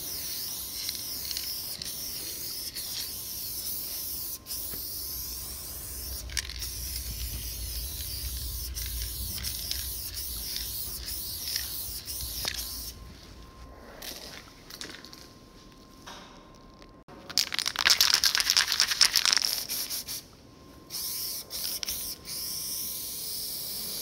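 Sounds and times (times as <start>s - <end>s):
spray paint can hissing: 0.0s - 13.0s, 17.4s - 20.2s, 20.9s - 24.0s.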